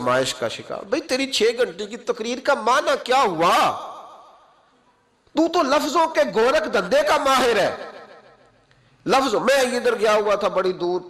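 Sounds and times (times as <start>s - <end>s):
man speaking with echo: 0.0s - 4.6s, 5.3s - 11.0s.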